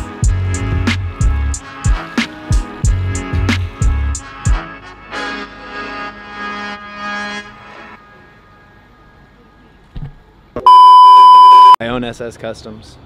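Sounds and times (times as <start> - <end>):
background music: 0.0 - 9.4
steady beep tone: 10.6 - 11.8.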